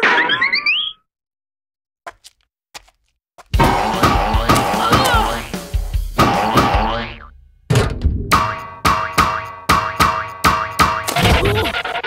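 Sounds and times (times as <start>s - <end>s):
comic sound effects: 3.6s - 5.6s, 11.0s - 12.0s
cartoon background music: 3.6s - 7.3s, 8.1s - 12.0s.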